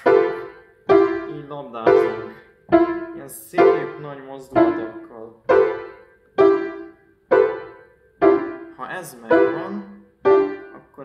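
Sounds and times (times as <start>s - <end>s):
piano chords struck: 0.0s - 11.0s.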